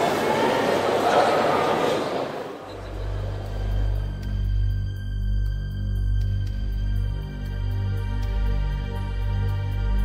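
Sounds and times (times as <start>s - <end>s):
background music with bass tones: 2.8s - 10.0s.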